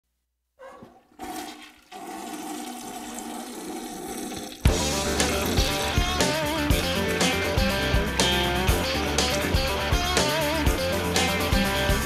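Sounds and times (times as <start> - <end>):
toilet flushing: 0.8 - 7.8
rock band with electric guitars: 4.6 - 12.0.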